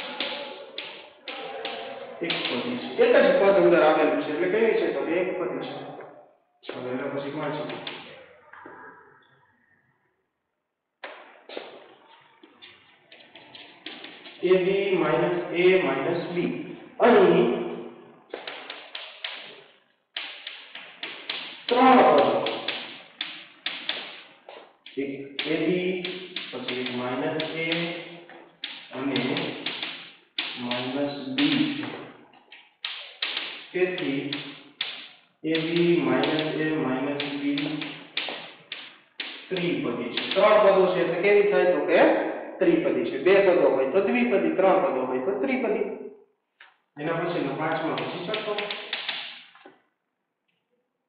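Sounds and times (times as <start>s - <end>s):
chalk tapping on chalkboard: 0.0s - 2.6s, 7.6s - 8.0s, 13.1s - 14.4s, 18.3s - 36.6s, 37.2s - 40.5s, 47.9s - 49.5s.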